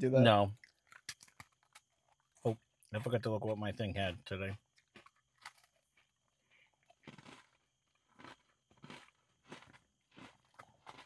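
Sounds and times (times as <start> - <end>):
faint cookie chewing crunches: 0.4 - 3.7, 4.6 - 11.0.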